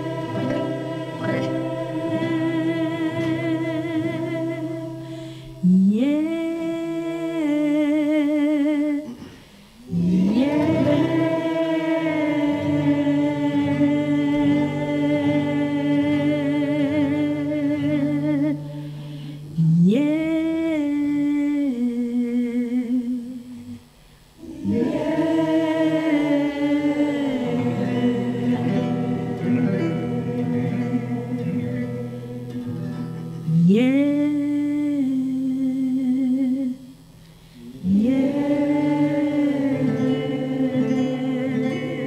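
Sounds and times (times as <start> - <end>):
nylon-string acoustic guitar: 0.0 - 8.2, 8.9 - 21.7, 24.4 - 42.0
woman singing with vibrato: 0.0 - 37.1, 37.8 - 42.0.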